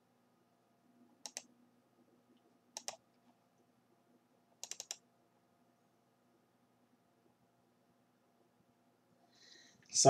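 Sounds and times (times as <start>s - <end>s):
computer mouse clicking: 1.2s - 1.5s, 2.7s - 3.1s, 4.6s - 5.0s.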